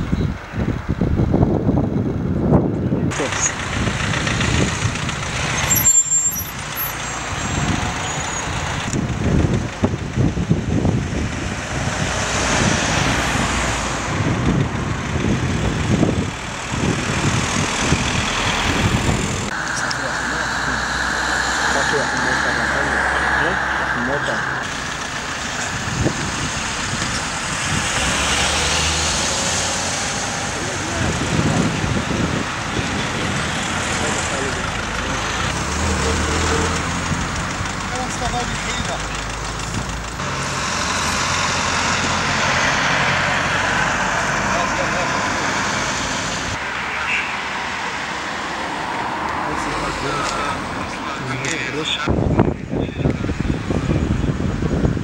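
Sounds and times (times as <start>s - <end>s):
people talking: 3.1s - 3.6s, 19.5s - 24.7s, 30.4s - 32.3s, 33.9s - 36.8s, 37.8s - 39.1s, 44.5s - 45.6s, 49.4s - 54.2s
cars driving past: 3.1s - 55.0s.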